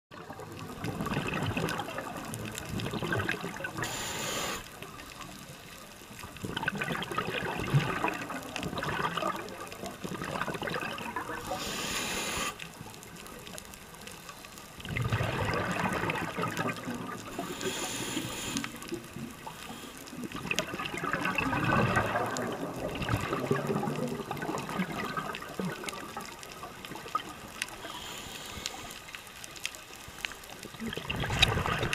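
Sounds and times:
bursts of bubbles underwater: 0.1s - 4.0s, 6.2s - 11.6s, 14.8s - 17.7s, 20.2s - 27.6s, 30.6s - 31.9s
regulator inhalation hiss: 3.8s - 4.9s, 11.5s - 12.7s, 17.3s - 18.9s, 27.8s - 29.2s.

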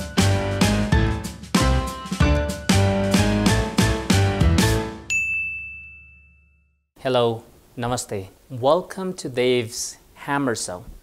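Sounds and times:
title music with steady beat: 0.0s - 5.9s
bright ringing ding: 5.1s - 6.8s.

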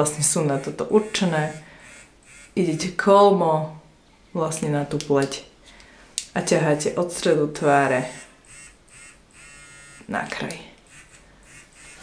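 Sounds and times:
beauty device buzzing: 0.0s - 3.0s, 7.8s - 12.0s.

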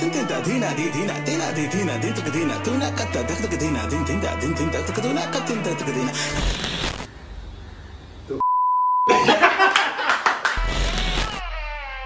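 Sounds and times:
sharp clicks: 6.3s - 7.1s, 10.6s - 11.4s
censor bleep tone: 8.4s - 9.1s.

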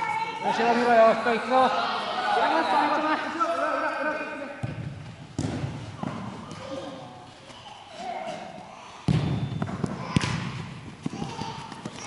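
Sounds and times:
players calling in echoing hall: 0.0s - 12.0s
ball kicked and thudding: 4.6s - 6.7s, 9.1s - 10.6s.

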